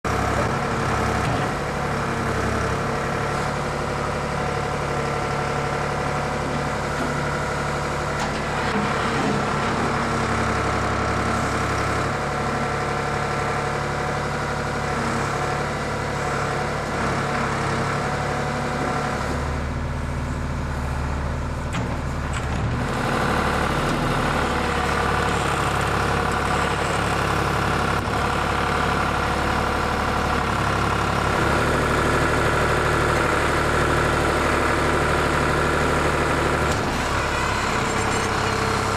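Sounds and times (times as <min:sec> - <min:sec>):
backhoe engine running: 0:00.0 - 0:38.9.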